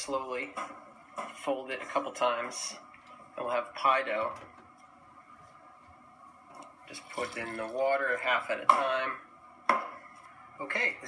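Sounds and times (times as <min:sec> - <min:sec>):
person speaking: 0:06.8 - 0:09.2.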